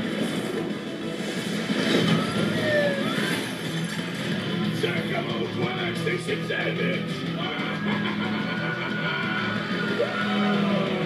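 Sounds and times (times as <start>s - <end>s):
heavy truck engine speeding: 0.0s - 6.0s
chase music: 0.0s - 11.0s.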